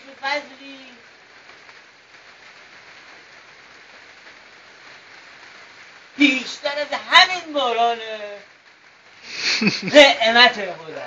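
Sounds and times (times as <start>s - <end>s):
rain falling: 0.0s - 11.0s.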